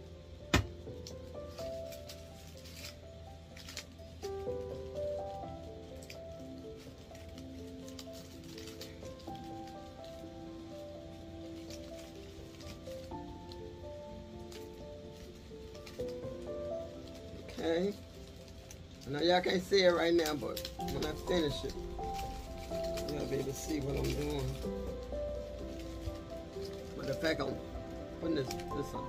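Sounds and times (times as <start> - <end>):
soft instrumental music: 0.0 - 29.0.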